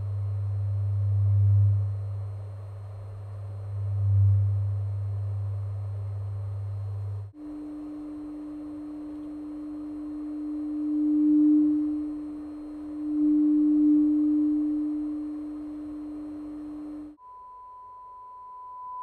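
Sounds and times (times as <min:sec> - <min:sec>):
lower test tone: 0:00.0 - 0:19.0
sine test tone: 0:00.0 - 0:19.0.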